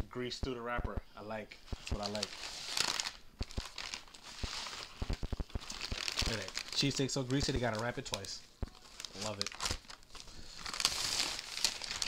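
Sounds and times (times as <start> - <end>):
food wrapping crinkling: 1.7 - 12.0.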